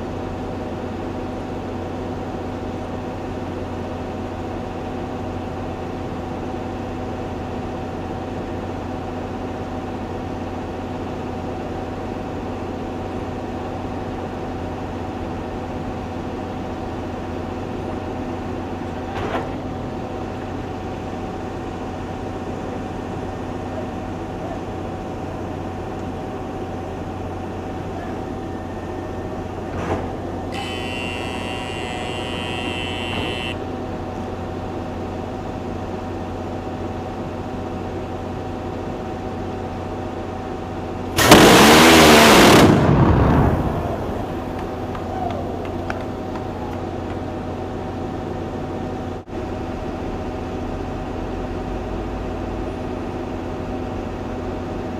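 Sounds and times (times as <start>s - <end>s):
steady machine hum: 19.9s - 54.8s
short clicks: 30.5s - 33.6s.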